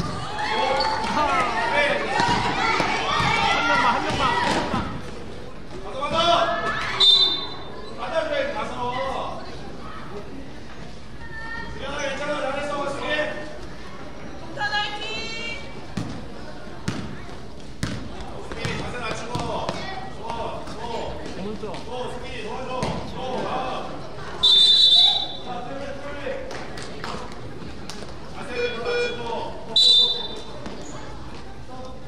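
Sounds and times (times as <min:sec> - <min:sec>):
referee's whistle: 0:07.0 - 0:07.7, 0:24.4 - 0:25.5, 0:29.8 - 0:30.5
basketball bouncing on gym floor: 0:16.8 - 0:17.2, 0:17.8 - 0:19.9.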